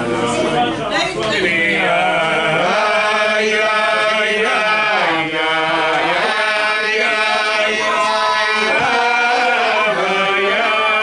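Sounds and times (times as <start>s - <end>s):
men singing together: 0.0s - 11.0s.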